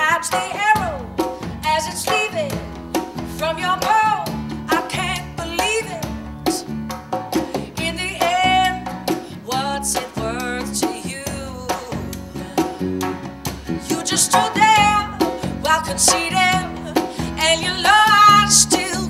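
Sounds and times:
woman singing with vibrato: 0.0s - 6.7s, 7.5s - 13.0s, 13.7s - 19.0s
djembe beat: 0.0s - 19.0s.

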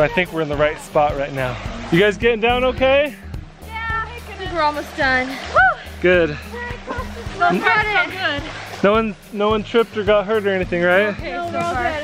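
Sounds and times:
people talking: 3.7s - 5.4s, 6.1s - 12.0s.

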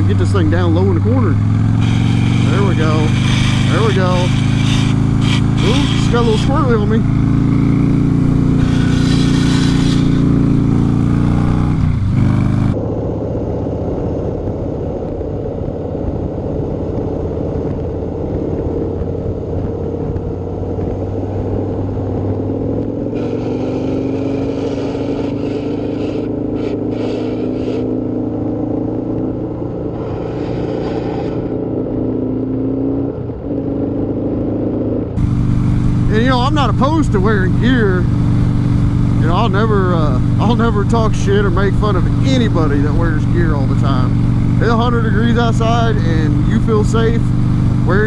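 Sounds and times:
wind rushing over microphone: 0.0s - 25.2s
motorcycle engine running: 0.0s - 48.0s.

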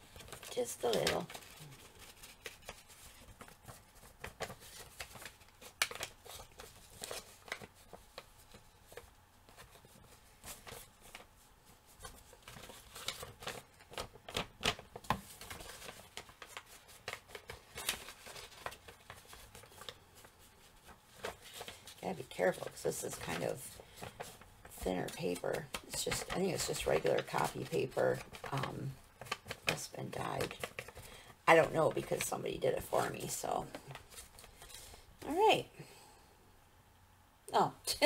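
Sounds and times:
paper rustling: 0.0s - 35.1s.

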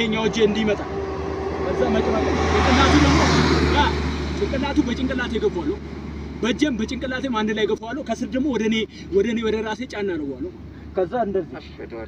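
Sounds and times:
vehicle passing on road: 0.0s - 11.5s.

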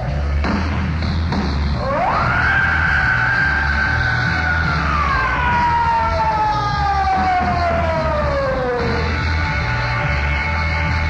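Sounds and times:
pulsing bass: 0.0s - 11.0s.

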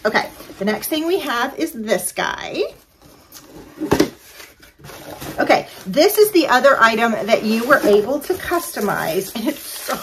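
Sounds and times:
cardboard box being handled: 3.5s - 10.0s.

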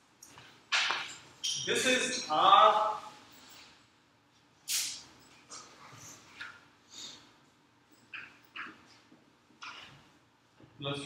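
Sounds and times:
marker squeaking on a whiteboard: 0.7s - 1.9s, 7.9s - 10.2s.

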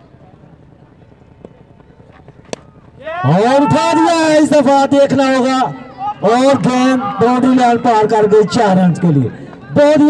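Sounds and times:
cricket bat hitting ball: 2.2s - 2.9s.

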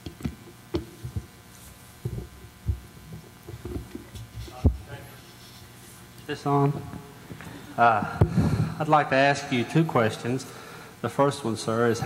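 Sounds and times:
microphone handling thumps: 0.0s - 1.4s, 2.0s - 5.0s, 8.1s - 8.8s.

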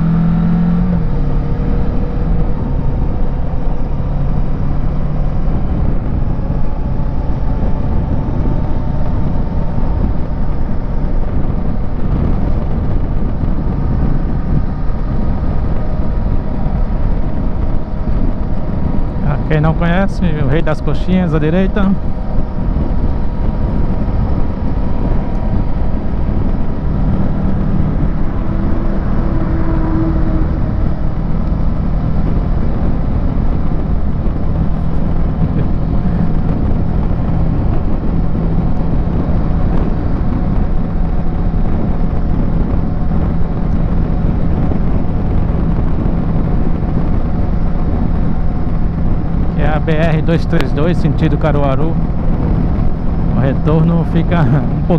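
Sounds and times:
motorcycle engine cruising: 0.0s - 54.9s
wind rumble on microphone: 0.0s - 54.9s.

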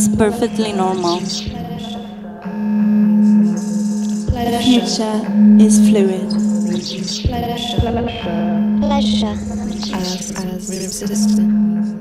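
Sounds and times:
synthesizer drone: 0.0s - 12.0s.

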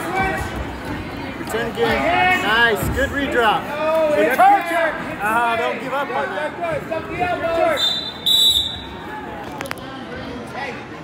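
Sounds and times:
crowd chatter: 0.0s - 11.0s
referee's whistle blast: 7.8s - 9.0s.

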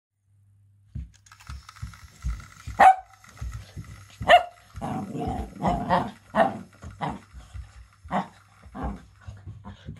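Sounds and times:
toy train motor whine: 1.2s - 9.5s
paws thudding on a rug: 2.7s - 9.9s
small dog barking: 2.8s - 3.1s, 4.2s - 5.0s.

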